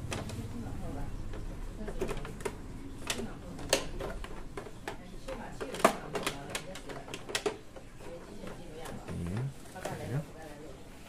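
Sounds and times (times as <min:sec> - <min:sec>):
plastic printer parts clicking: 0:01.3 - 0:09.2.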